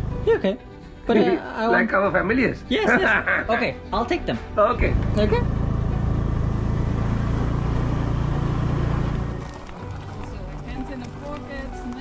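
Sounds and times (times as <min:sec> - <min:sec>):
mix of voices: 0:00.3 - 0:05.5, 0:09.4 - 0:12.0
motor scooter engine drone: 0:04.9 - 0:11.2.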